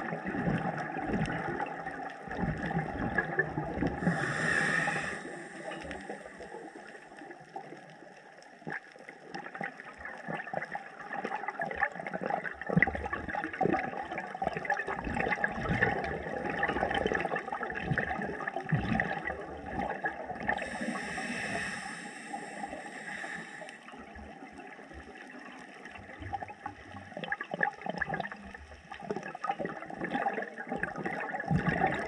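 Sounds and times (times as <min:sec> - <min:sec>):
bubbling gurgle of exhaled air: 0:00.0 - 0:32.0
regulator inhalation hiss: 0:04.0 - 0:07.1, 0:20.6 - 0:23.9.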